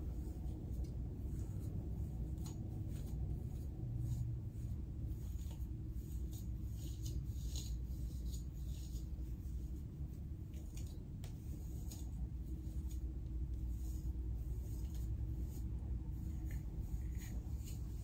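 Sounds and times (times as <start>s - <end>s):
comb scratching through hair: 0.0s - 18.0s
steady low hum: 0.0s - 18.0s.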